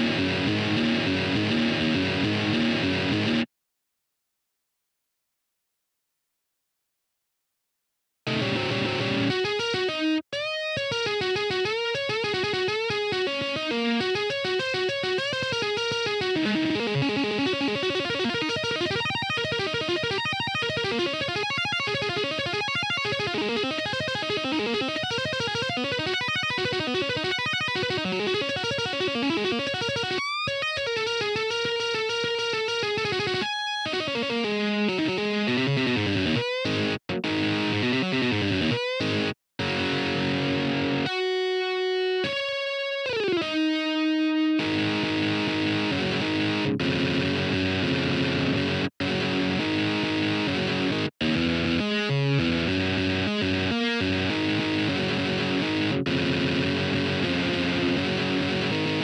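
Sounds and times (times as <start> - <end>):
electric guitar solo: 0.0 - 3.5, 8.3 - 59.0.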